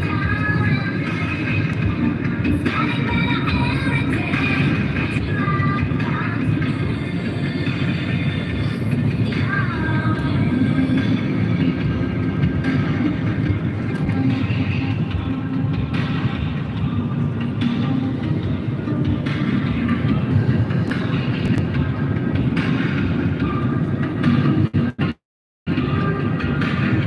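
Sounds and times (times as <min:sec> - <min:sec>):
car road and engine noise: 0:00.0 - 0:27.0.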